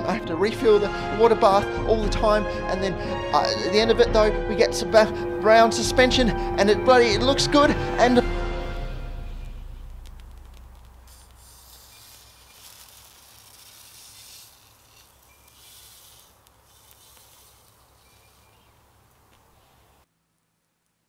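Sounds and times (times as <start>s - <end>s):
soft hissing: 8.5s - 20.1s.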